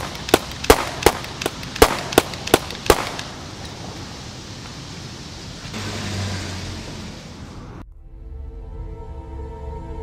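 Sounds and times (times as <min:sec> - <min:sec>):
pistol shots: 0:00.0 - 0:03.3.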